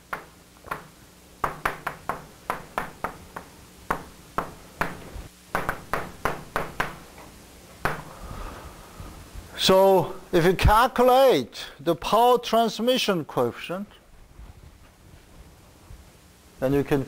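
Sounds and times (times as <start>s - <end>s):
chalk tapping on blackboard: 0.1s - 7.0s.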